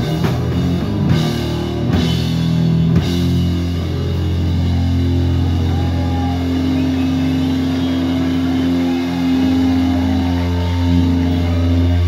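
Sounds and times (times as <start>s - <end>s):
heavy rock band playing: 0.0s - 12.0s.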